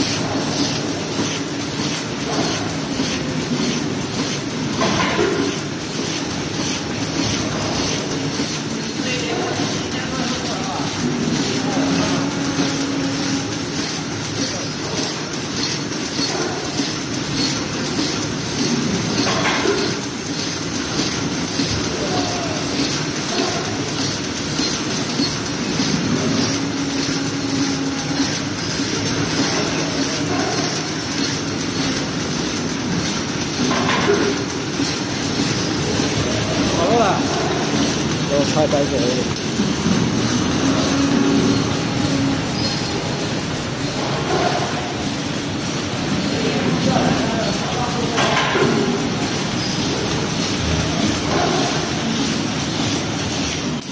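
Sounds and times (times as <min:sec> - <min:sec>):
packing machine clattering: 0:00.0 - 0:53.9.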